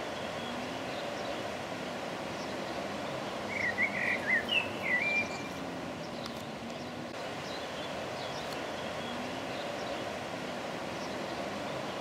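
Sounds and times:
steady outdoor rushing noise: 0:00.0 - 0:12.0
songbird warbling: 0:02.3 - 0:10.1.

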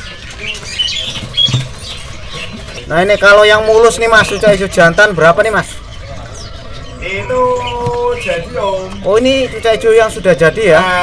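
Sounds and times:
caged birds chirping: 0:00.0 - 0:11.0
market background noise: 0:00.0 - 0:11.0.

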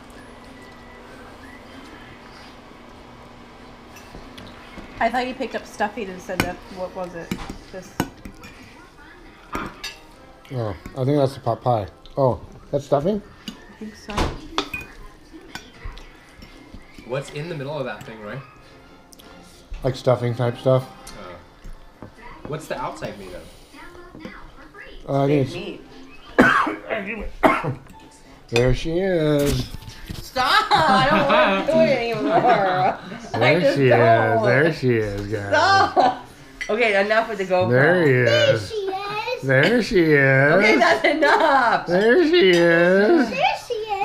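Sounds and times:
forks clinking on plates: 0:03.9 - 0:04.5, 0:09.5 - 0:10.2, 0:13.4 - 0:13.8, 0:14.5 - 0:18.3, 0:41.9 - 0:43.2
person coughing: 0:26.4 - 0:27.8.

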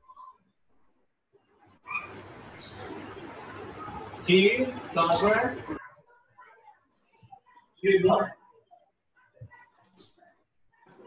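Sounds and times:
room noise hiss: 0:01.9 - 0:05.8.

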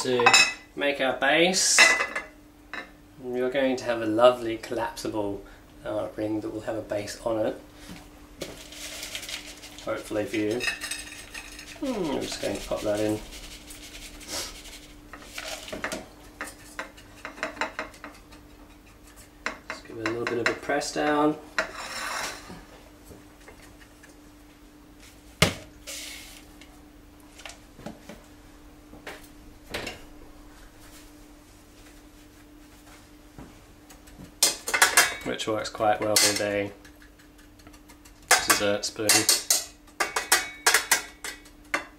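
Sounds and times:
steady low hum: 0:00.0 - 0:41.9
kitchen utensils handled: 0:36.0 - 0:36.5.

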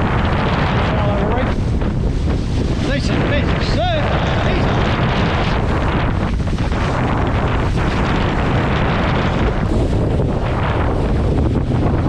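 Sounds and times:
rushing sea water: 0:00.0 - 0:12.0
wind buffeting microphone: 0:00.0 - 0:12.0.

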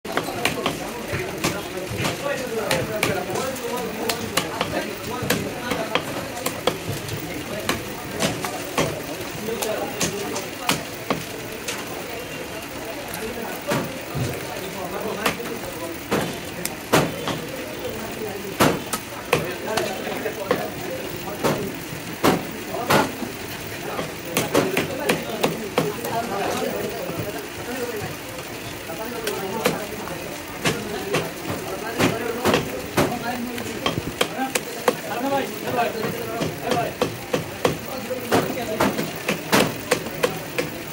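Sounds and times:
indistinct voices: 0:00.0 - 0:40.9.

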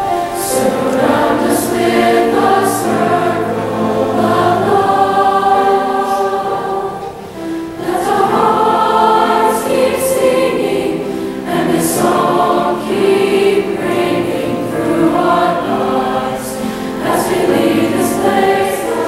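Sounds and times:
mixed choir singing harmony: 0:00.0 - 0:19.0.

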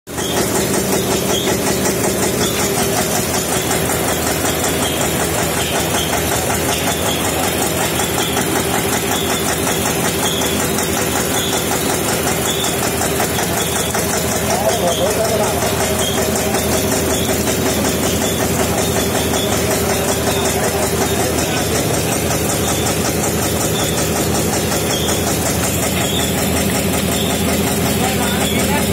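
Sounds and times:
oil expeller machine droning: 0:00.1 - 0:28.9.

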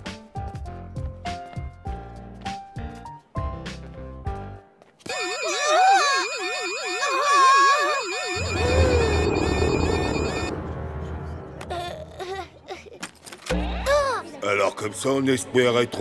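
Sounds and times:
fast warbling siren: 0:05.1 - 0:10.5.

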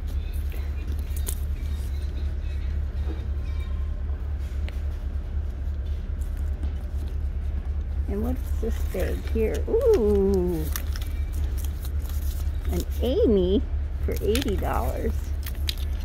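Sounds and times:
low background rumble: 0:00.0 - 0:16.0.

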